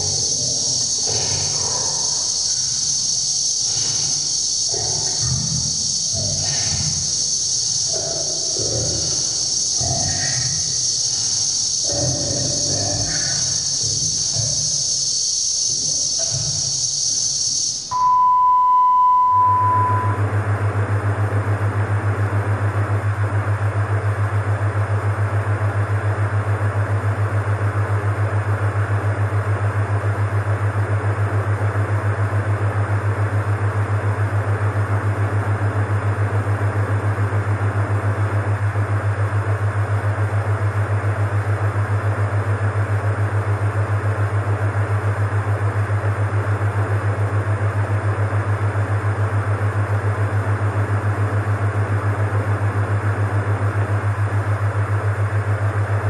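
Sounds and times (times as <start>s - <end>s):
hiss: 0.0s - 17.9s
pulsing low electronic drone: 0.0s - 18.0s, 19.4s - 56.0s.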